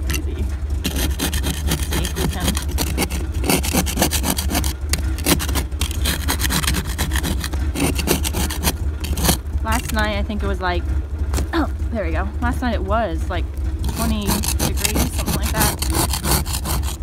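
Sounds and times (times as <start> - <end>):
ice scraper scraping windshield: 0.0 - 10.1, 13.8 - 17.0
low hum: 0.0 - 17.0.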